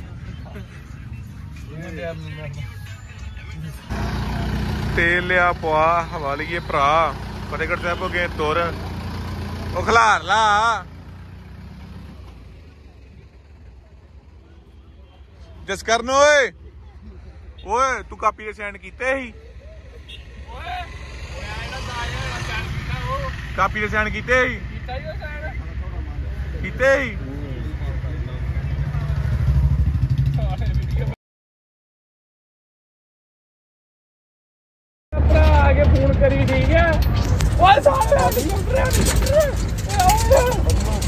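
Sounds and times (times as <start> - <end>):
tractor diesel engine rumble: 0.0 - 20.8, 35.2 - 41.0
voices: 0.0 - 31.2, 35.2 - 41.0.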